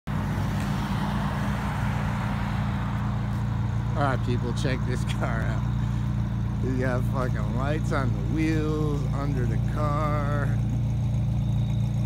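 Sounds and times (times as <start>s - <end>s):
car engine idling: 0.1s - 12.0s.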